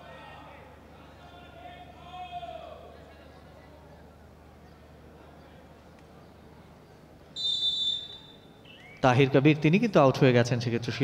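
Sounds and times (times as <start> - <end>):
referee's whistle blast: 7.4 - 8.8.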